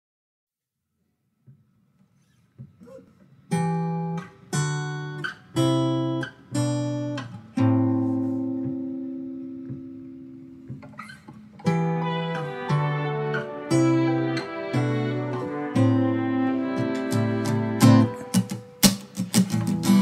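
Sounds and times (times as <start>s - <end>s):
acoustic guitar strumming chords: 2.6s - 20.0s.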